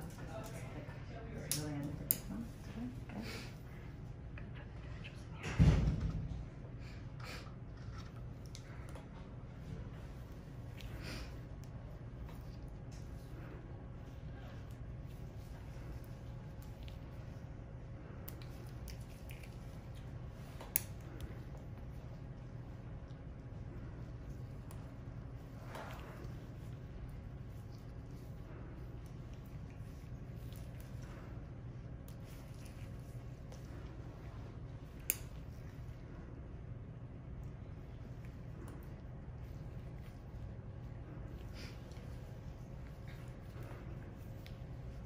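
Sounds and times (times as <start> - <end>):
low room hum: 0.0 - 45.0.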